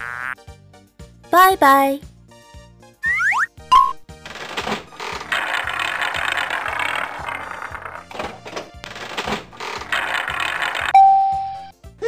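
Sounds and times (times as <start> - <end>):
prize wheel clicking: 4.2 - 11.0.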